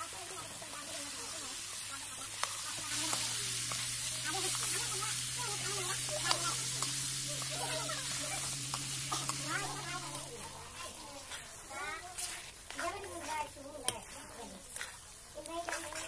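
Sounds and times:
vegetables sizzling in a pan: 0.0 - 16.0
spoon scraping and clicking on pan: 8.6 - 9.4.

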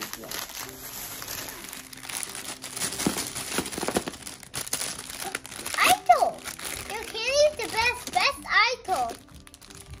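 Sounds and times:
plastic bags and wrappers crinkling: 0.0 - 10.0
child's voice: 5.7 - 9.3.

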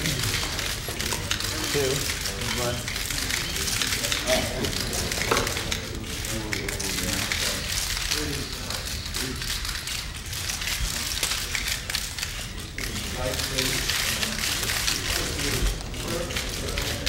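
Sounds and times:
low voices murmuring: 0.0 - 17.0.

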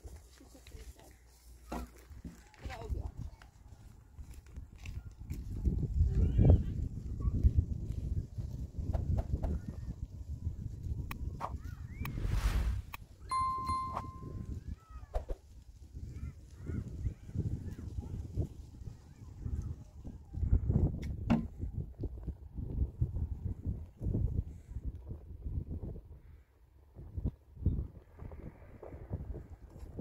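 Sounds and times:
wind buffeting microphone: 2.6 - 30.0
short whoosh: 11.9 - 13.1
bright electronic ding: 13.3 - 14.4.

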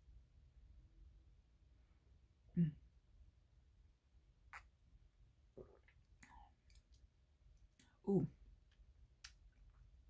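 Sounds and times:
mouth clicks and lip smacks: 4.5 - 4.8, 5.6 - 7.1, 8.7 - 9.8.

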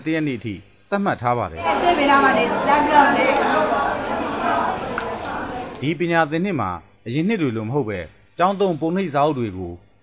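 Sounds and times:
babble of overlapping voices: 1.6 - 5.8.

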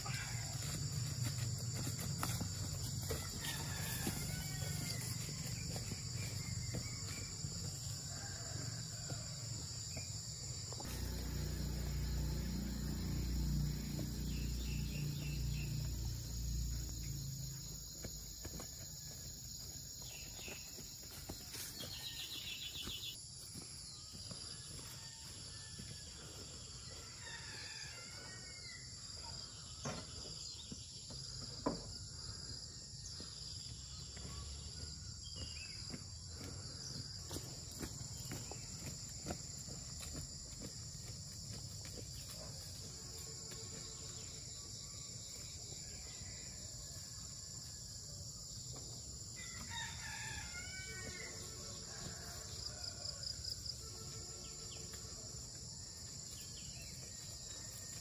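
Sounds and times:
insect chorus buzzing: 0.0 - 58.0.

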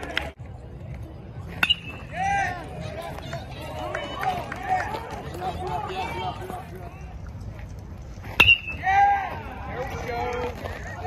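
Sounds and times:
metal bat hitting ball: 1.6 - 2.1, 8.4 - 8.8
voices yelling: 2.0 - 7.1, 8.7 - 11.0.

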